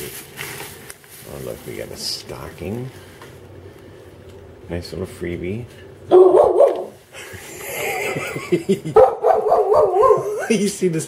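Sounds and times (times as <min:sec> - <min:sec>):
dog barking: 0:06.1 - 0:07.0, 0:09.0 - 0:10.4.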